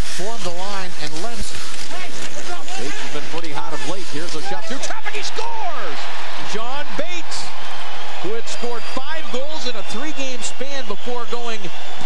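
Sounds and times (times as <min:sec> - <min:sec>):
man commentating: 0:00.0 - 0:07.6, 0:08.2 - 0:11.9
steady background noise: 0:00.0 - 0:12.0.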